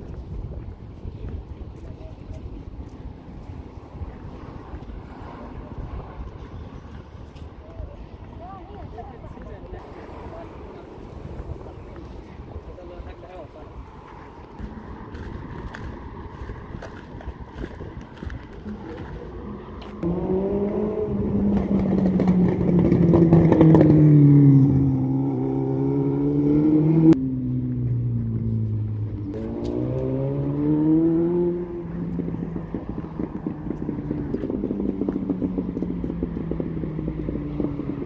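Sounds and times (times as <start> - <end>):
street noise: 0.0 - 38.0
vehicle engine: 0.0 - 38.0.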